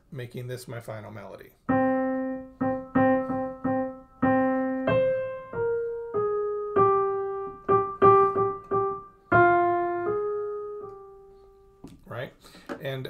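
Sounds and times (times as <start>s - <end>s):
man speaking: 0.0s - 1.6s, 12.0s - 13.0s
piano melody: 1.7s - 11.9s.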